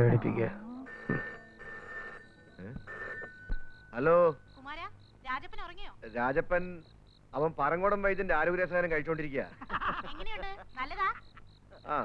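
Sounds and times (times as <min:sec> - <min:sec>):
landline telephone ringing: 0:00.0 - 0:05.0.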